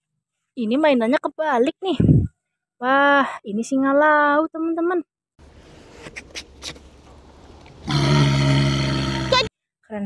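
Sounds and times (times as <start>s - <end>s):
walrus calling: 6.0s - 9.5s.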